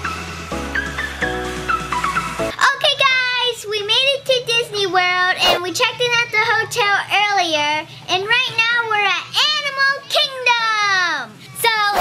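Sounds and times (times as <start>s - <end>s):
girl talking sing-song: 2.5s - 12.0s.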